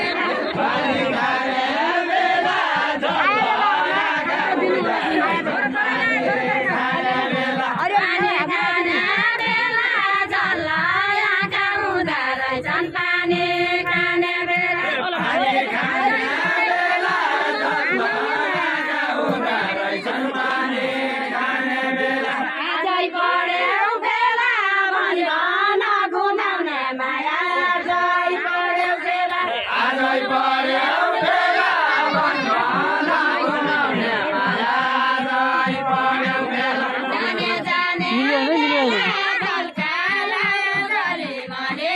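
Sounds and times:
group singing unaccompanied folk song: 0:00.0 - 0:41.9.

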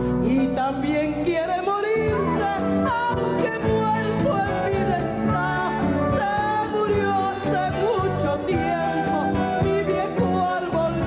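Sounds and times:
electric guitar: 0:00.0 - 0:11.0
keyboard: 0:00.0 - 0:11.0.

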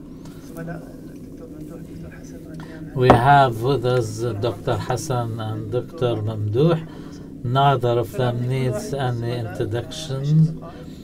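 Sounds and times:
faint muffled man's speech: 0:00.4 - 0:11.0.

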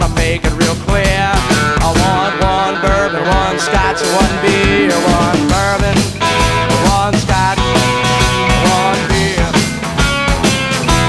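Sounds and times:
electric guitar with gliding notes: 0:01.4 - 0:07.8.

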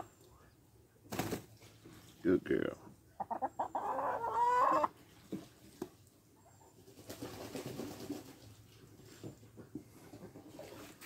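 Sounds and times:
hen clucking: 0:03.1 - 0:05.0.

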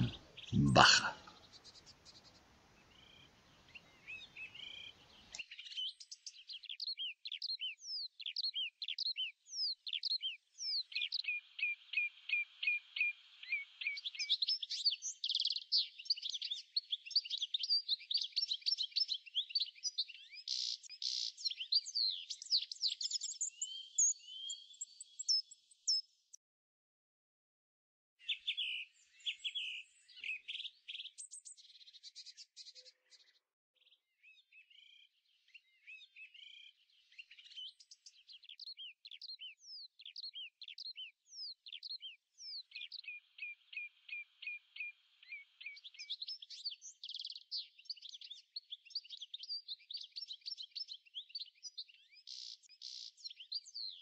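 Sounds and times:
songbirds singing: 0:00.0 - 0:26.2, 0:28.2 - 0:54.0.

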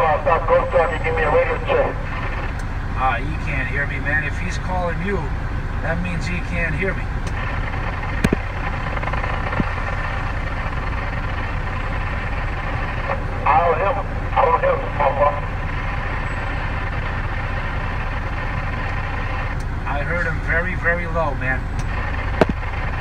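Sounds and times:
voice over radio: 0:00.0 - 0:02.4, 0:03.0 - 0:07.1, 0:12.9 - 0:15.6
radio hiss: 0:00.0 - 0:03.6, 0:11.8 - 0:16.8
truck engine idling: 0:00.0 - 0:23.0.

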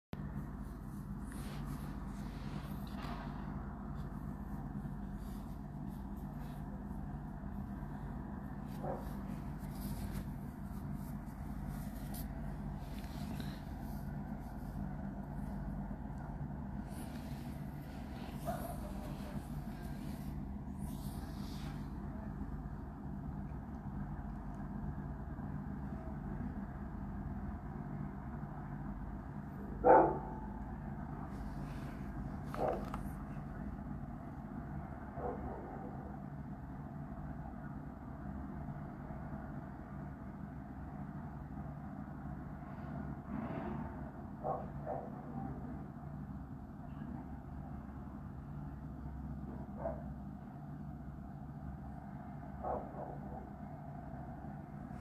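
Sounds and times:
dog barking: 0:08.8 - 0:09.2, 0:18.4 - 0:19.4, 0:29.8 - 0:30.5, 0:32.5 - 0:32.9, 0:35.2 - 0:36.1, 0:44.4 - 0:45.4, 0:49.7 - 0:50.1, 0:52.6 - 0:53.5.

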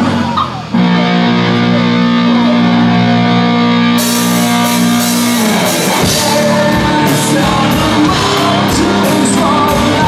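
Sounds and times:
guitar chord sliding down: 0:00.0 - 0:09.1
drums and cymbals: 0:00.0 - 0:10.0.

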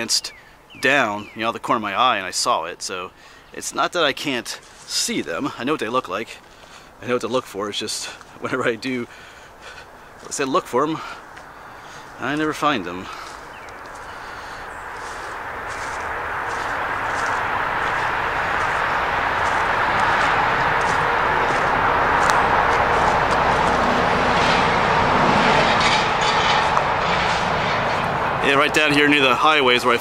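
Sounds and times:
highway traffic rush: 0:02.9 - 0:30.0.

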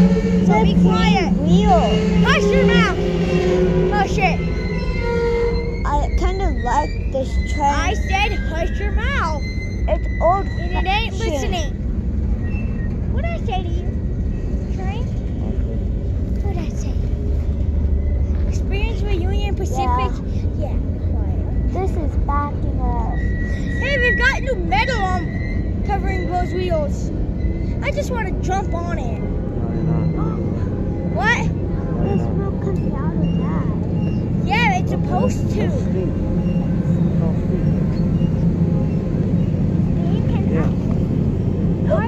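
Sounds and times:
high steady wheel squeal: 0:00.0 - 0:42.0
train wheels rumbling on rails: 0:00.0 - 0:42.0.

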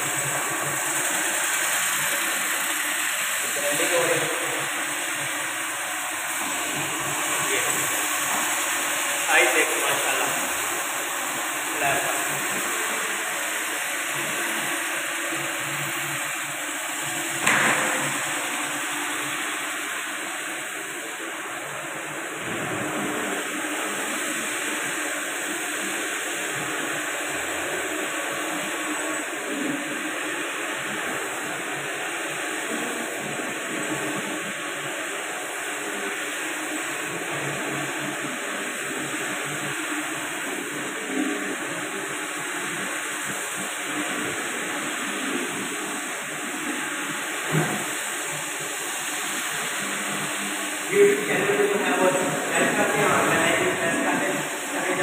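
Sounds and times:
floor grinding machine running: 0:00.0 - 0:55.0.

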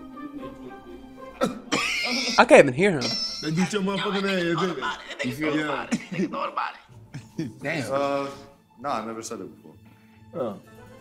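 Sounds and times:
faint background music: 0:00.0 - 0:11.0
person coughing: 0:01.4 - 0:02.4, 0:05.0 - 0:06.5.

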